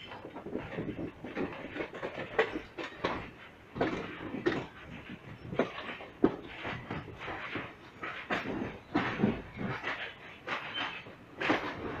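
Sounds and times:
train wheels clacking over rail joints: 0.0 - 12.0.

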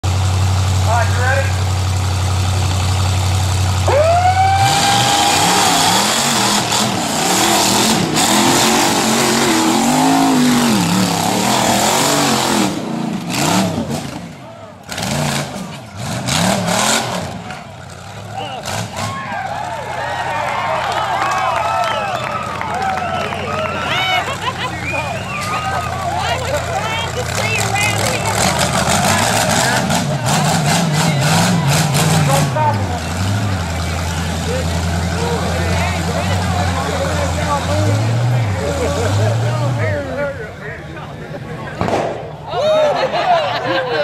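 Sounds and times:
buggy engine idling and revving: 0.0 - 44.0
spectators shouting and cheering: 3.6 - 16.0, 16.7 - 44.0.

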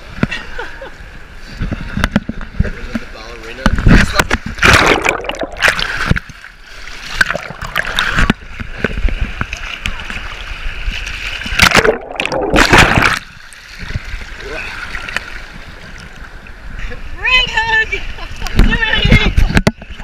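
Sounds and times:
big water splashes: 1.4 - 20.0
muffled water sloshing: 1.5 - 17.0.

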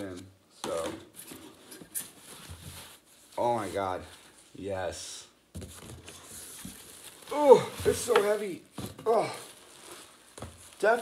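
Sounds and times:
foam packaging wrap rustling: 6.2 - 8.6, 9.2 - 11.0.

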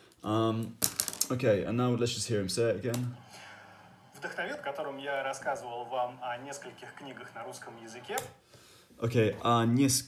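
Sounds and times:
man speaking: 4.0 - 8.4, 9.0 - 10.0.

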